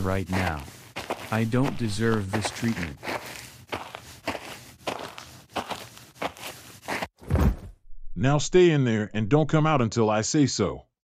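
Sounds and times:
footsteps walking: 0.0 - 7.2.

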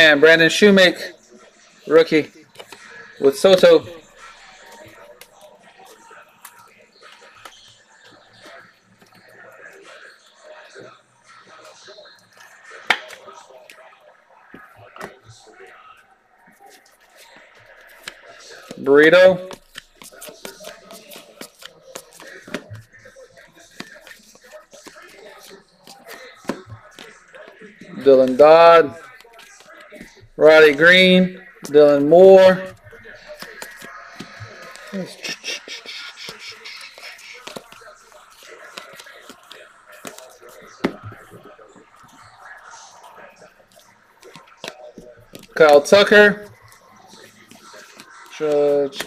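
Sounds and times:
faint background music: 0.0 - 49.0
cards clicking and slapping: 19.5 - 22.9, 23.6 - 27.6, 36.3 - 41.5
person speaking: 23.8 - 42.4.

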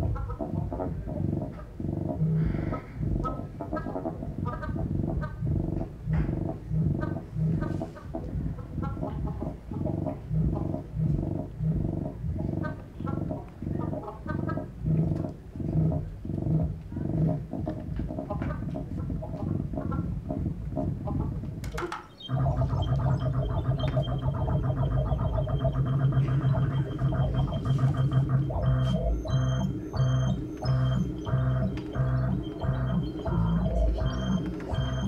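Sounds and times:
pulsing low electronic tones: 0.0 - 35.0.

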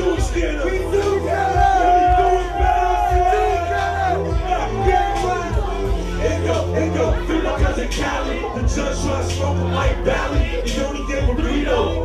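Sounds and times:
man shouting into a microphone: 0.0 - 8.5
crowd noise: 0.0 - 12.0
hip hop beat with heavy bass: 0.0 - 12.0.

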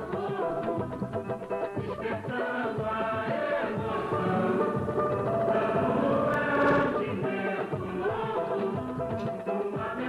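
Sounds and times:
jingle with voices singing: 2.0 - 8.8.

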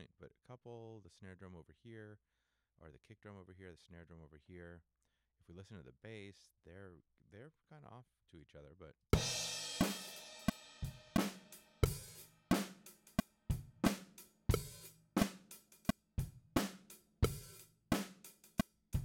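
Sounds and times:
bass: 0.0 - 2.2, 2.8 - 11.2, 11.8 - 19.0
drum kit beat: 9.2 - 19.0.

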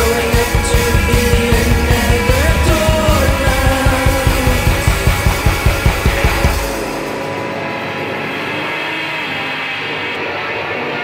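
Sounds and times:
fast rock drum beat: 0.0 - 8.1
sustained chords ringing: 0.0 - 10.5
guitar and bass: 0.0 - 11.0.

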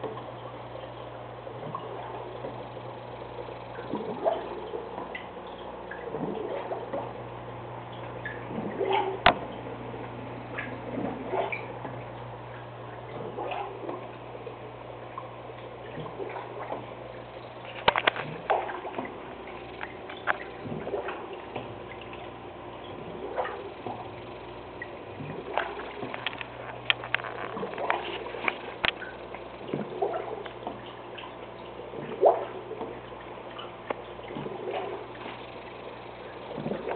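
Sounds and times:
aquarium water trickling: 0.0 - 36.9
steady low hum: 0.0 - 36.9.

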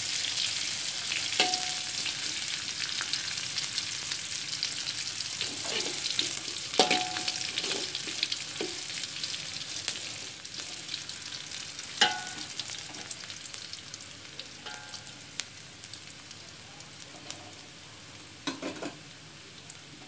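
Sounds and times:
food sizzling in hot oil: 0.0 - 20.0
spatula knocking on wok: 1.4 - 2.0, 6.8 - 7.5, 12.0 - 12.5
spatula scraping wok: 5.4 - 9.0.

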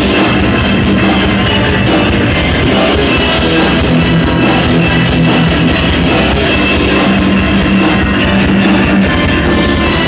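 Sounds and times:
bass guitar: 0.0 - 10.0
distorted electric guitars: 0.0 - 10.0
drum kit: 0.0 - 10.0.

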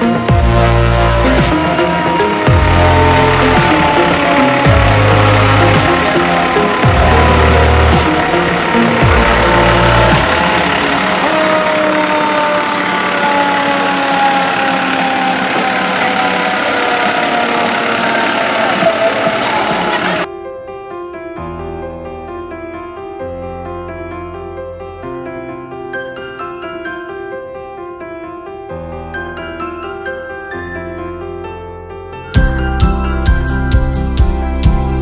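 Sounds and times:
electronic music with heavy bass: 0.0 - 11.8
long tone falling in pitch: 0.0 - 20.3
parade vehicles passing: 0.0 - 20.3.

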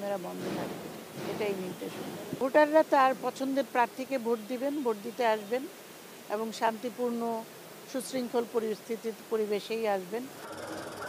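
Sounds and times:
woman speaking: 0.0 - 5.7, 6.3 - 10.3
low outdoor background noise: 0.0 - 11.0.

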